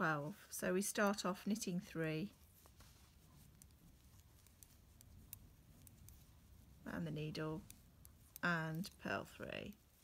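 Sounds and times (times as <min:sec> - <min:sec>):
knitting needles clicking: 0:00.9 - 0:10.0.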